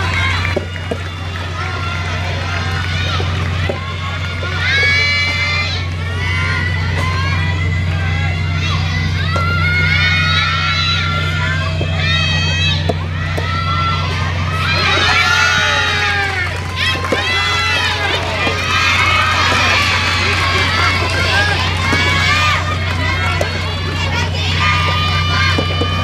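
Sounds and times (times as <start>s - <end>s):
steady low hum: 0.0s - 26.0s
high-pitched voices shouting: 1.6s - 26.0s.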